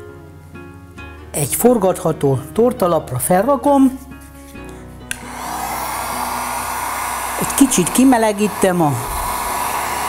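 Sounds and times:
faint background music: 0.0s - 9.4s
heat gun switch click: 5.1s - 5.3s
heat gun blowing hiss and whine: 5.1s - 10.0s.

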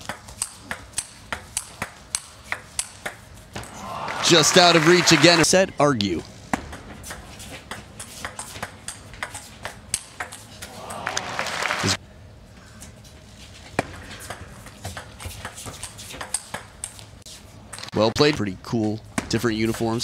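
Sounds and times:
crowd noise: 3.6s - 5.7s, 10.6s - 12.0s.

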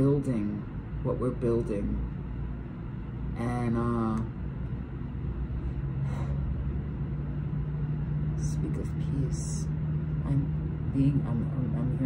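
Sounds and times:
constant rumble: 0.0s - 12.0s
steady low hum: 0.0s - 12.0s.

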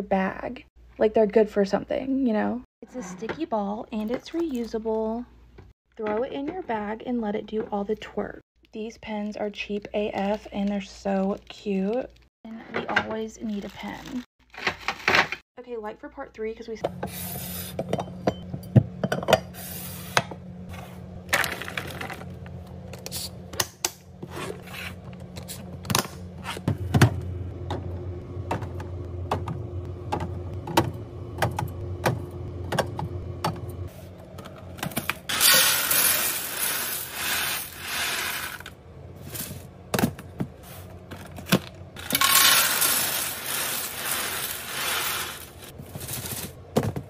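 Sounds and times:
cereal pouring into plastic canister: 35.3s - 38.6s, 42.2s - 45.7s.

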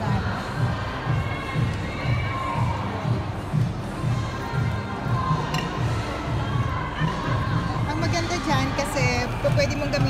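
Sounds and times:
crowd chatter and calls: 0.0s - 10.0s
music with steady bass beat: 0.0s - 10.0s.

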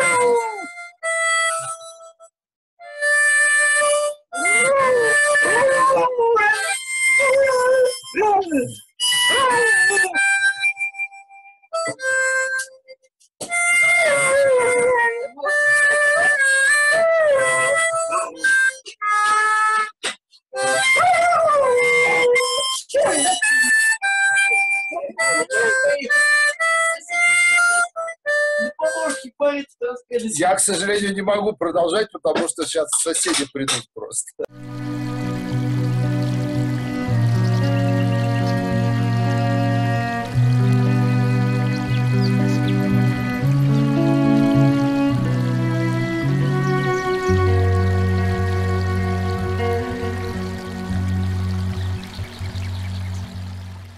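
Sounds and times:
dog howling: 0.0s - 0.7s, 14.0s - 15.3s, 20.7s - 22.4s
harmonica playing: 0.0s - 2.2s, 2.8s - 20.0s, 20.6s - 29.3s, 34.5s - 52.7s.

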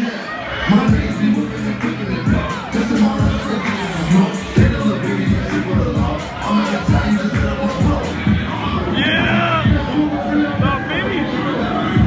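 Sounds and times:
crowd shouting and cheering: 0.0s - 12.0s
hip-hop track through sound system: 0.0s - 12.0s
deep bass kicks: 4.4s - 10.8s.

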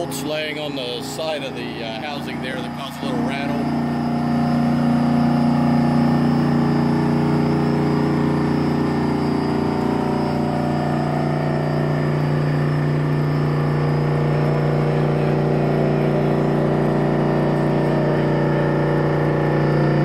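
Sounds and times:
centrifuge whirring and humming: 0.0s - 20.0s.

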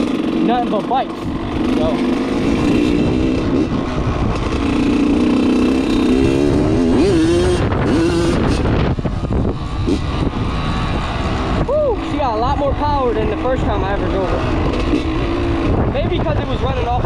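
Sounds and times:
dirt bike engine revving: 0.0s - 17.0s.

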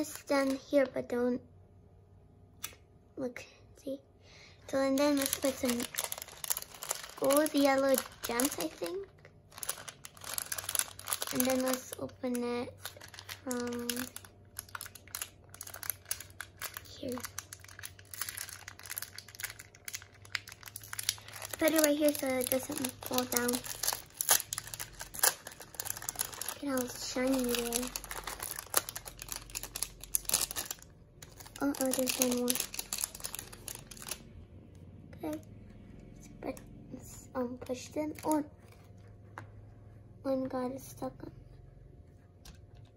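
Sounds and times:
plastic bag crinkling: 4.7s - 34.3s, 37.6s - 39.0s.

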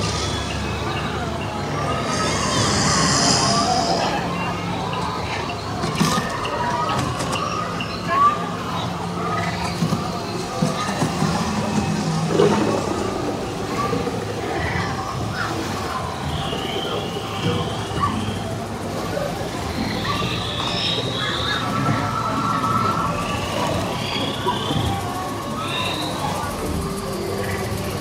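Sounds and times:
alien creature calls and chirps: 0.0s - 5.8s, 19.7s - 28.0s
soft ambient music: 0.0s - 28.0s.

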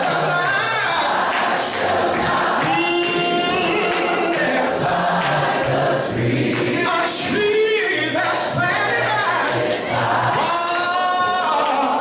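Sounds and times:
voices singing in harmony: 0.0s - 12.0s
man singing into microphone: 2.6s - 4.8s, 10.3s - 12.0s.

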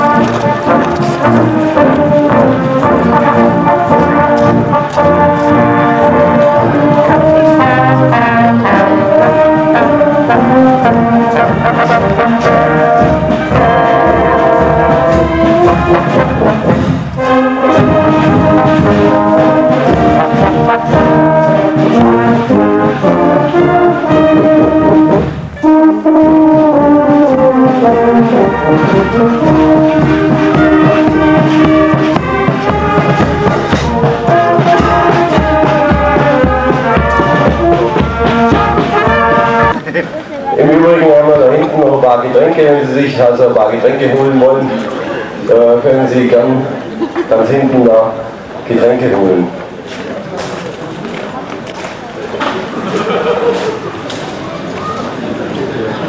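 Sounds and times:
steady drum beat: 0.0s - 40.0s
marching wind band playing: 0.0s - 56.0s.

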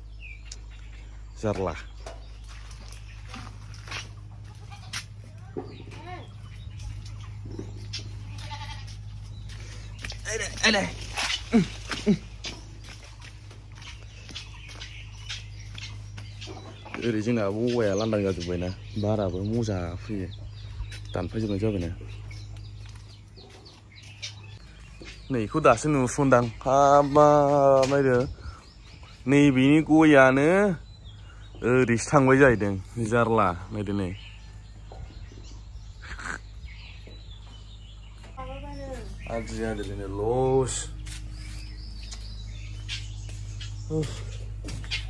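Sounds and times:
steady low hum: 0.0s - 45.0s
chickens clucking: 1.6s - 25.2s, 41.0s - 45.0s.

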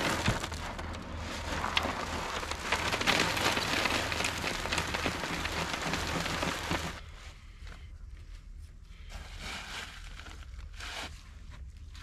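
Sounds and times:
grains pattering into tray: 0.0s - 7.0s.

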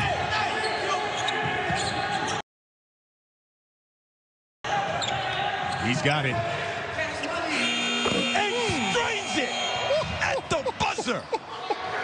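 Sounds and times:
arena horn electronic tone: 7.4s - 9.9s.

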